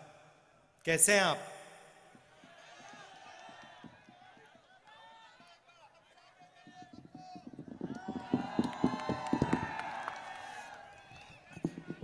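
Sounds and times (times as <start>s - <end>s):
crowd cheering and shouting: 2.3s - 5.6s, 6.6s - 12.0s
sharp claps: 6.7s - 12.0s.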